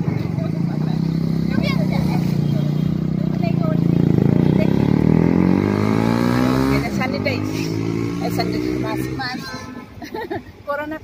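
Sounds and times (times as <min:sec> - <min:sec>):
vehicle engine revving: 0:00.4 - 0:09.4.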